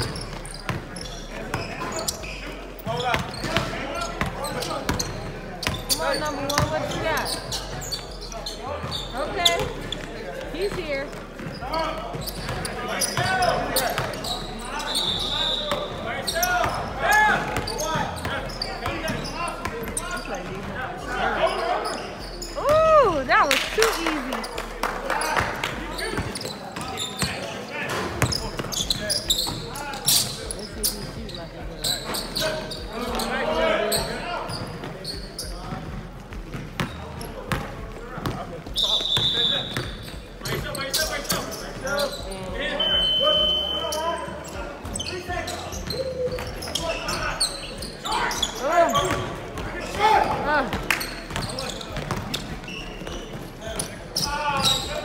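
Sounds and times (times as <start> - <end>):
players calling out: 0.0 - 55.0
sneakers squeaking: 0.0 - 55.0
basketball bouncing: 49.0 - 53.8.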